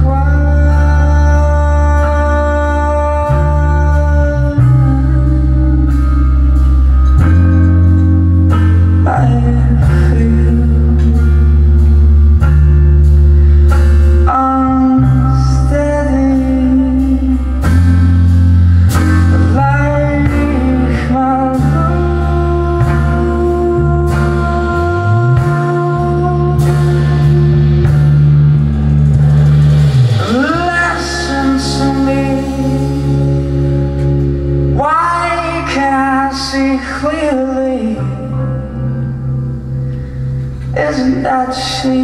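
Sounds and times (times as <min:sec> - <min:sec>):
live rock band playing: 0:00.0 - 0:42.0.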